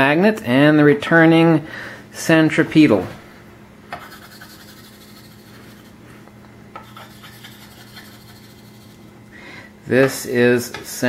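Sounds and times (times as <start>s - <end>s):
chalk scratching on chalkboard: 4.0s - 6.0s, 6.8s - 9.0s.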